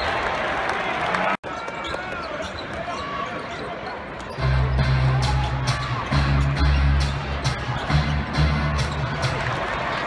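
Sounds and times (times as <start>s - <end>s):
bass-heavy music over loudspeakers: 4.4s - 9.8s.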